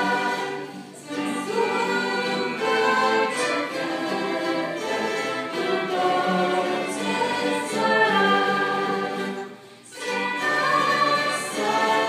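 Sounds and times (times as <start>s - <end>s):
string orchestra playing hymn: 0.0s - 12.0s
voices singing: 0.0s - 12.0s.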